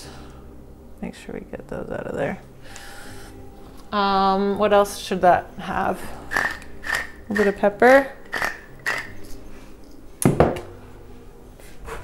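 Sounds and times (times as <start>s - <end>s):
pepper mill grinding: 6.2s - 9.4s.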